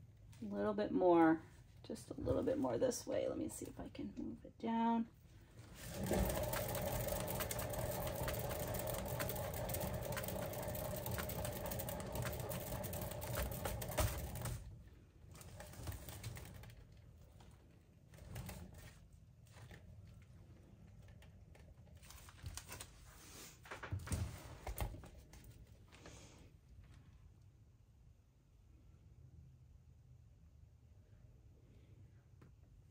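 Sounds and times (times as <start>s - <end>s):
turntable whirring rattle: 5.8s - 14.6s.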